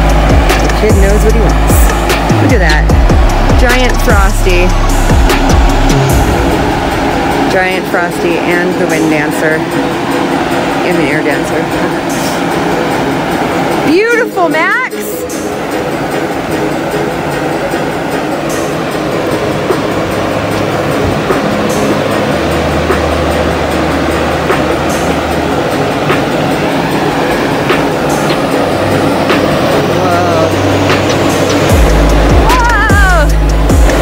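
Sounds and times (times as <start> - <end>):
deep steady bass line: 0.0 - 9.8, 19.2 - 34.0
wavering gliding tones: 0.0 - 34.0.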